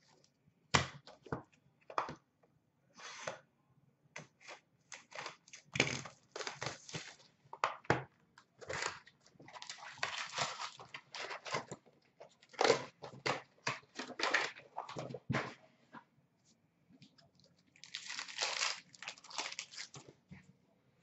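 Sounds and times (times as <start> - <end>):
cardboard and wrapper tearing: 4.9 - 7.2, 9.6 - 11.7, 12.5 - 14.6, 17.8 - 20.0.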